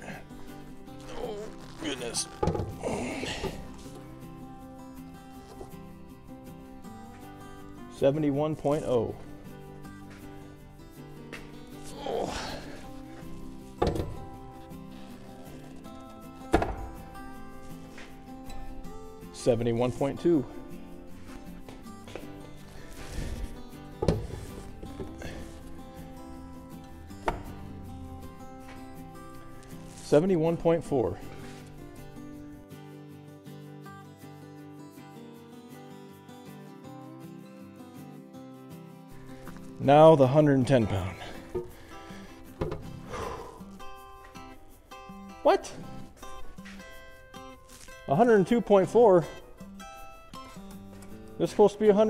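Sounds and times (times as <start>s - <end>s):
background music: 0.0s - 52.0s
handling noise: 1.0s - 4.1s, 41.2s - 44.6s.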